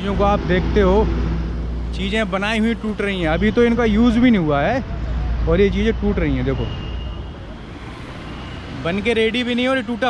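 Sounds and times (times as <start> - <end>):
city road traffic rumble: 0.0 - 10.0.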